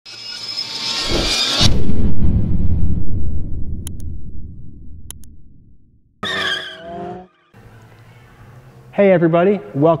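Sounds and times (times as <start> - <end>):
loud low rumble: 1.6 - 6.2.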